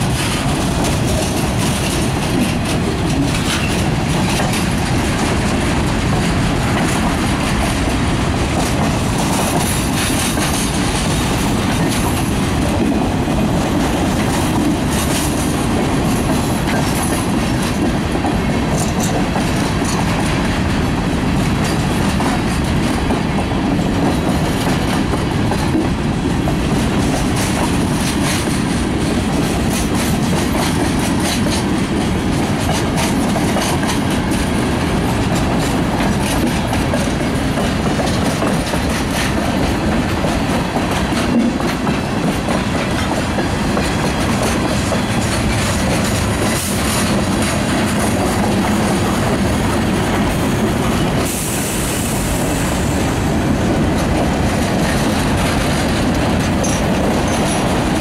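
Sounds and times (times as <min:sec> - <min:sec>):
freight train wheels clacking: 0:00.0 - 0:58.0
train rumble: 0:00.0 - 0:58.0.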